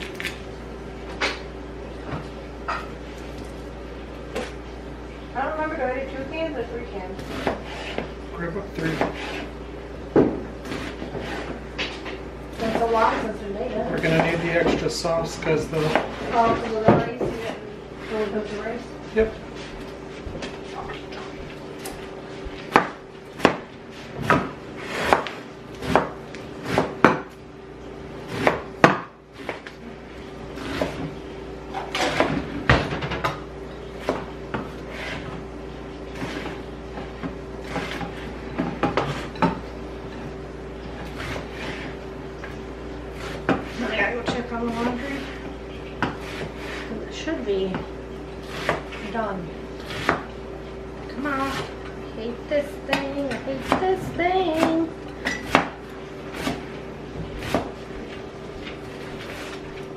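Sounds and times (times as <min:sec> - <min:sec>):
steady low hum: 0:00.0 - 0:59.9
knife chopping on cutting board: 0:07.2 - 0:08.1, 0:08.8 - 0:09.5, 0:10.1 - 0:11.9, 0:15.7 - 0:17.5, 0:22.5 - 0:27.4, 0:28.2 - 0:29.7, 0:30.6 - 0:31.1, 0:31.7 - 0:33.4, 0:34.0 - 0:35.4, 0:36.2 - 0:39.6, 0:41.0 - 0:42.0, 0:43.2 - 0:45.4, 0:46.0 - 0:46.9, 0:48.4 - 0:49.0, 0:49.8 - 0:50.3, 0:52.9 - 0:56.7, 0:57.4 - 0:57.8.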